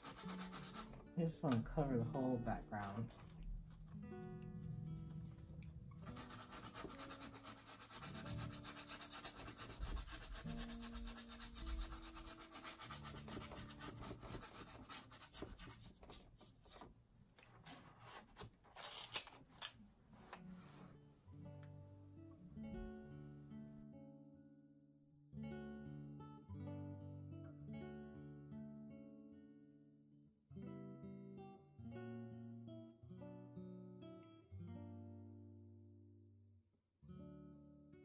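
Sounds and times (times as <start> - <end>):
brush scrubbing on canvas: 0.0 - 1.0, 6.0 - 16.9
soft guitar music: 0.0 - 16.4, 19.8 - 38.0.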